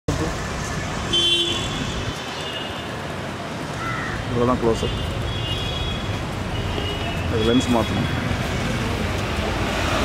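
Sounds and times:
street traffic noise: 0.1 - 10.0
vehicle horn toot: 1.1 - 1.9.

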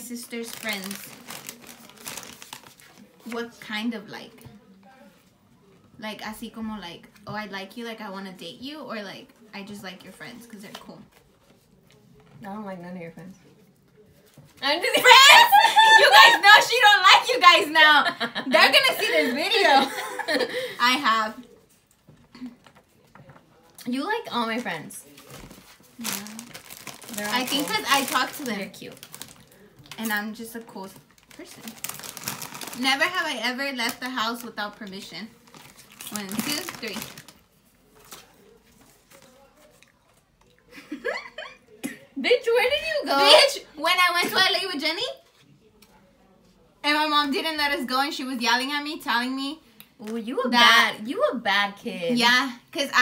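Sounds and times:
plastic chip bag crinkling: 0.0 - 3.4, 24.5 - 39.8
paper cards rustling: 0.4 - 3.4
woman speaking: 14.6 - 21.4.

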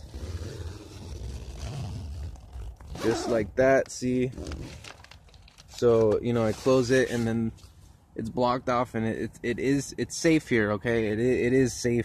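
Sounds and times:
zipper being drawn closed: 0.0 - 3.5, 4.3 - 5.0.

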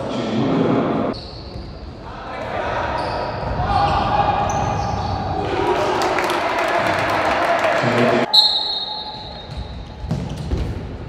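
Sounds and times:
shoes squeaking on floor: 1.1 - 1.9
ball kicked and bouncing: 9.4 - 11.0.

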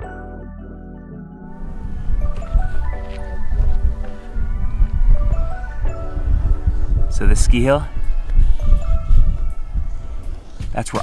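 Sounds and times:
soft background music: 0.0 - 11.0
wind buffeting microphone: 1.5 - 11.0.

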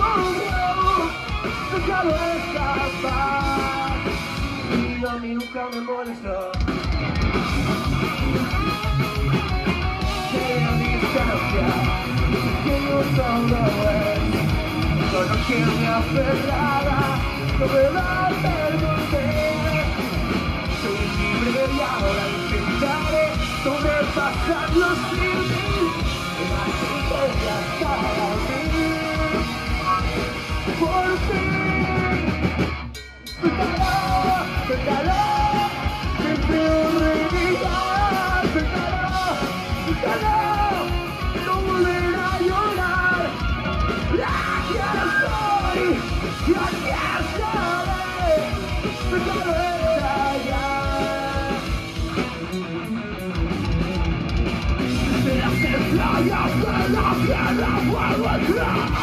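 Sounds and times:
person shouting singing: 0.0 - 6.6, 9.9 - 32.5, 33.4 - 51.6, 55.1 - 59.0
bass guitar: 0.0 - 59.0
distorted electric guitars: 0.0 - 59.0
drums: 0.0 - 59.0
punk rock band playing live: 0.0 - 59.0.

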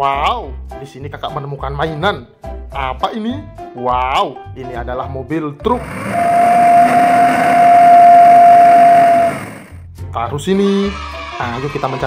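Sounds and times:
strong held tone: 5.7 - 9.8
truck engine noise: 5.7 - 9.8.

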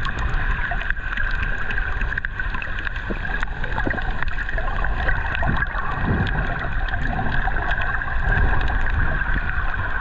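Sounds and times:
muffled underwater rumble: 0.0 - 10.0
sharp clicks and crackles: 0.0 - 10.0.

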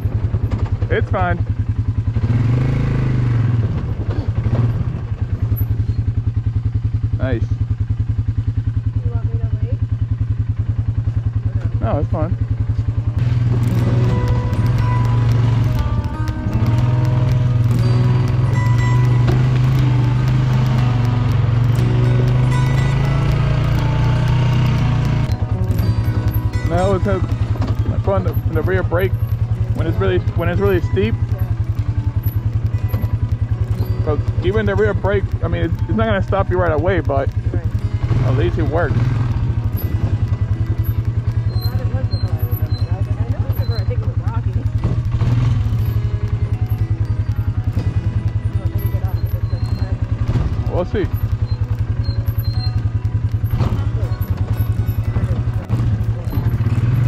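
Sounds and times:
atv engine pulsing at low revs: 0.0 - 57.0.

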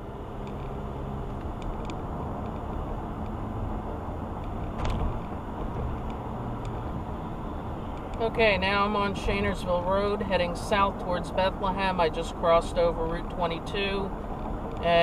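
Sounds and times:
car road and engine noise: 0.0 - 15.0.

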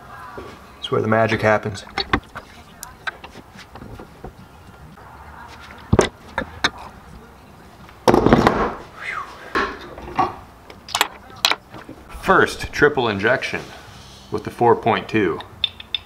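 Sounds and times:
handling noise: 1.8 - 8.8.

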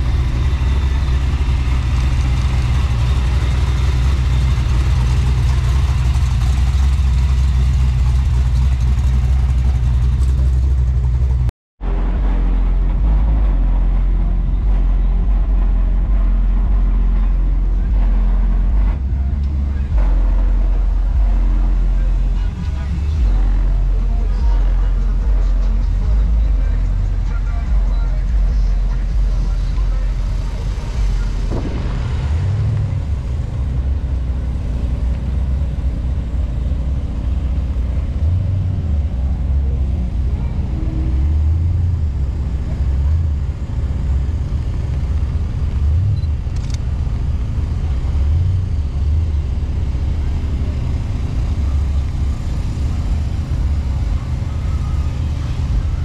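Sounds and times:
vehicle low rumble: 0.0 - 56.0
background voices: 11.9 - 46.3.

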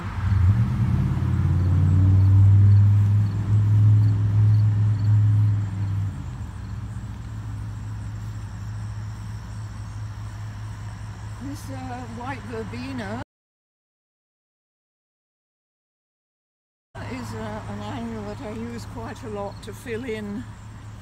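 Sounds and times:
vehicle engine running: 0.0 - 13.2, 17.0 - 21.0.

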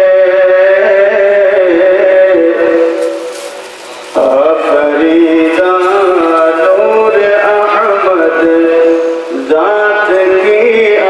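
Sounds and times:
man singing a slow chant: 0.0 - 3.3, 4.1 - 11.0.

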